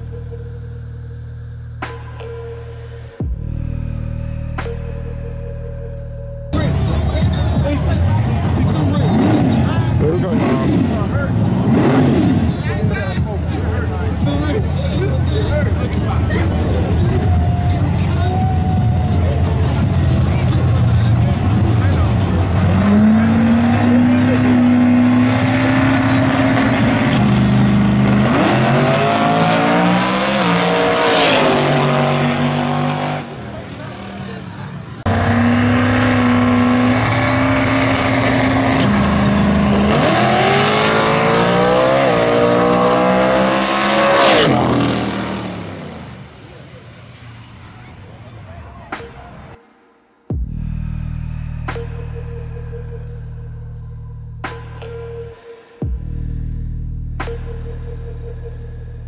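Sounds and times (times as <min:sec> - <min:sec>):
race car engine revving and accelerating: 0:06.5 - 0:46.4.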